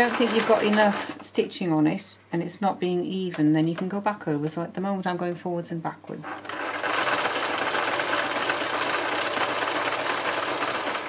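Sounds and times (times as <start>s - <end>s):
sewing machine running: 0.0s - 1.3s, 6.4s - 11.0s.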